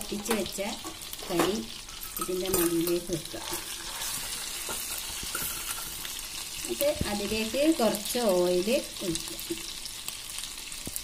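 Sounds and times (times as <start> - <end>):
chicken sizzling in a pan: 0.0 - 11.0.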